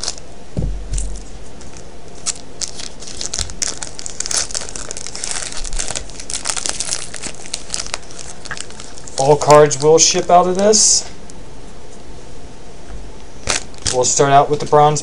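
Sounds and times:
scissors cutting foil wrapper: 0.0 - 0.2, 1.0 - 10.2
foil wrapper crinkling and tearing: 0.0 - 0.3, 0.9 - 10.9, 13.4 - 14.8.

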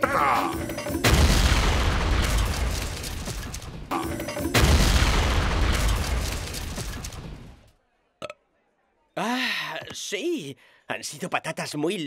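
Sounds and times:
cartoon booms: 1.0 - 2.8, 3.8 - 6.4.

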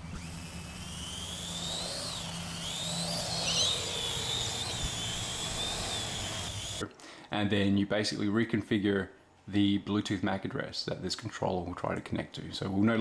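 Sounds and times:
drone rotors whining: 0.0 - 6.8.

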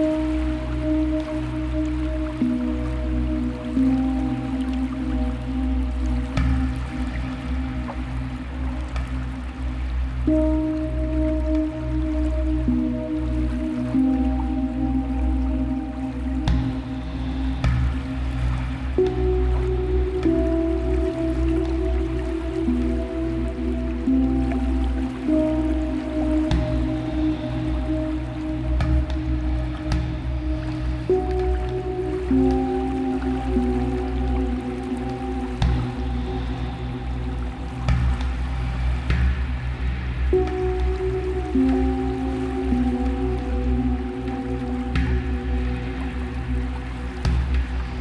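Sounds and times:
dark ambient music: 0.0 - 48.0
deep bass drone: 0.0 - 48.0.

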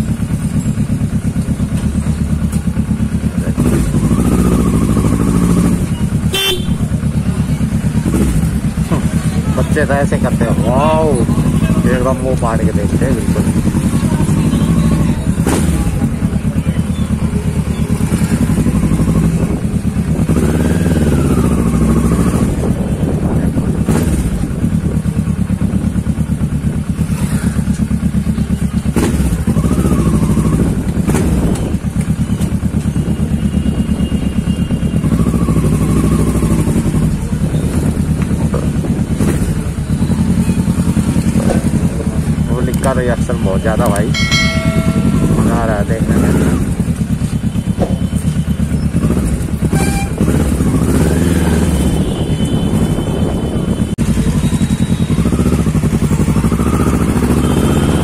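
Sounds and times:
motorcycle engine running at low revs: 0.0 - 58.0.

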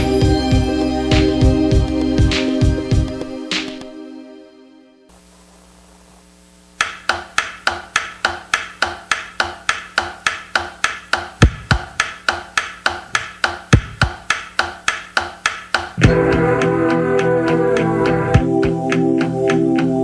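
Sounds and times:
sharp click-like percussion: 6.8 - 16.2
deep bass drum thumps: 16.0 - 16.4.

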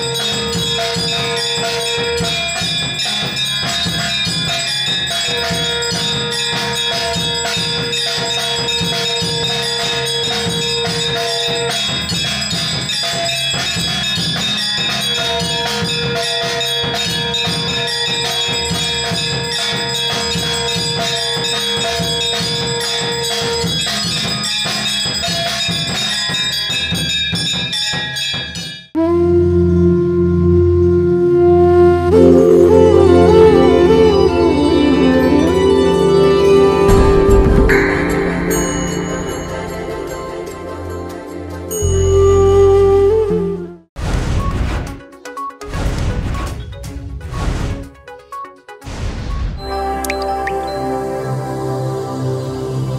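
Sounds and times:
rattling percussion: 0.0 - 29.0, 32.1 - 43.3
temple bells ringing: 0.0 - 29.0, 32.1 - 43.2, 49.6 - 52.9
soft sustained music: 29.0 - 43.8, 49.6 - 52.9
long steady held note: 29.0 - 43.9, 49.6 - 52.9.

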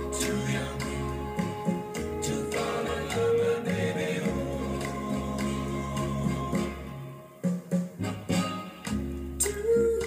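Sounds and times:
person singing: 0.0 - 7.5, 9.4 - 10.0
bass and drums: 0.0 - 10.0.

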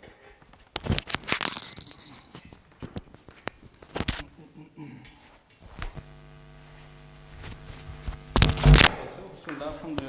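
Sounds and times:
cloth rustling against microphone: 5.6 - 9.0
small microphone clip clicks: 7.3 - 9.0.

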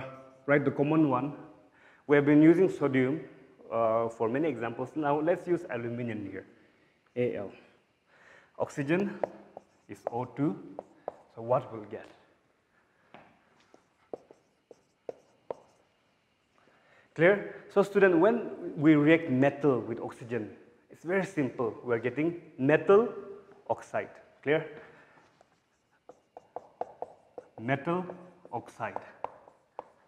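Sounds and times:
marker writing on a whiteboard: 8.7 - 12.5, 13.2 - 16.6, 25.0 - 30.0.

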